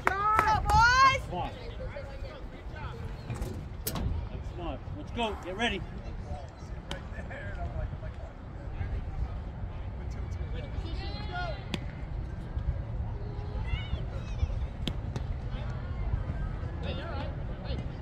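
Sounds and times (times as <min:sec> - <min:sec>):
wind rumble on microphone: 0:00.0 - 0:18.0
distant shouts of crowd: 0:10.0 - 0:18.0.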